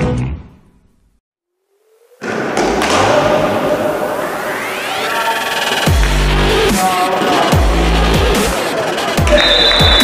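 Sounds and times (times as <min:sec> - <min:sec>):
rising sweep: 0:01.5 - 0:07.2
electronic music: 0:01.7 - 0:10.0.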